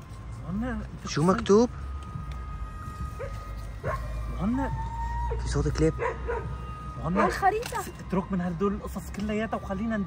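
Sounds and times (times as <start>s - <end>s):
dog barking: 3.2s - 4.2s, 6.0s - 7.4s.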